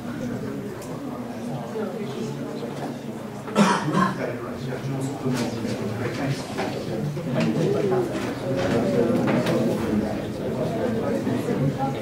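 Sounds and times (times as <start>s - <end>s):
murmur of students talking: 0.0s - 12.0s.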